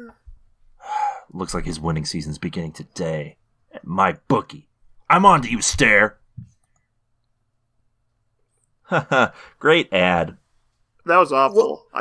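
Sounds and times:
man speaking: 1.3 - 6.2.

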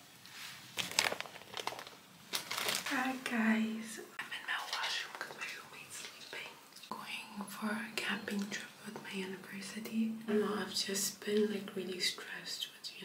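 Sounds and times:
woman speaking softly: 2.9 - 5.9, 6.9 - 13.0
woman whispering: 2.9 - 11.0, 11.8 - 13.0.

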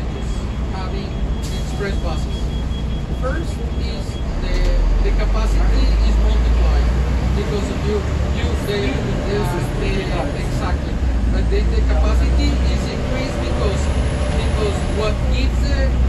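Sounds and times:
bus engine and road rumble: 0.0 - 16.0.

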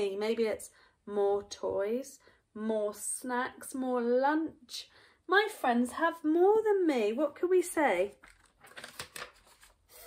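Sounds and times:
paper card rustling: 8.0 - 10.0.

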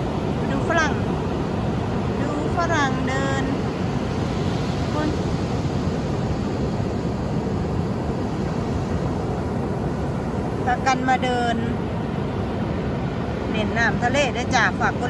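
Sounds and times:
ocean surf roaring: 0.0 - 15.0.

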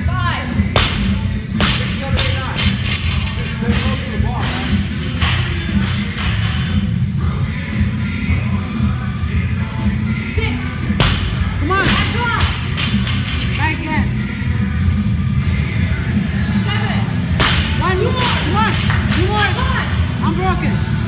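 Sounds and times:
gym music with heavy bass: 0.0 - 21.0
barbell crashing on floor: 17.4 - 19.6.

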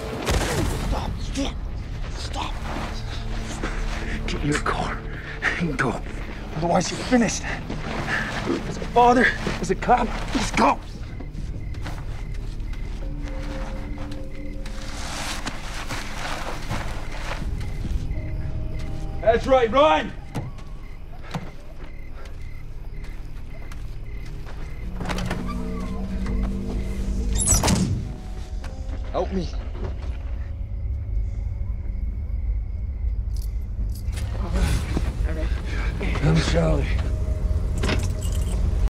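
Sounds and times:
light jingling: 37.6 - 38.8.

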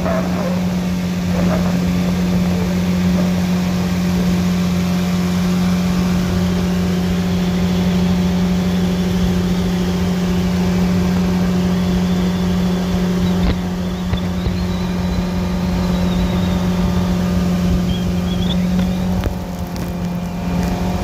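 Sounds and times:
jet boat motors running: 0.0 - 21.0
water rushing and spraying: 0.0 - 21.0.

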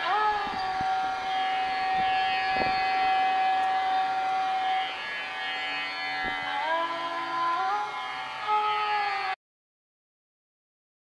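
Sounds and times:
indian classical instrumental music: 0.0 - 9.4.

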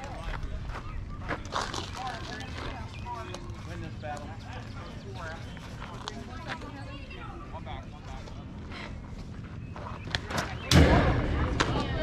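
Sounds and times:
distant voices calling: 0.0 - 12.0
steady low rumble: 0.0 - 12.0.

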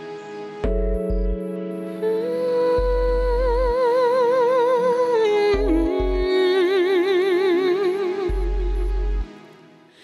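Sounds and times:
woman singing with vibrato: 2.0 - 9.2.

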